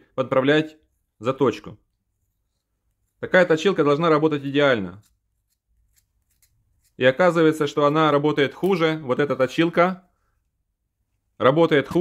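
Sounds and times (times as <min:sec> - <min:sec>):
knife scraping pencil wood: 0:01.9 - 0:03.2, 0:04.7 - 0:08.0.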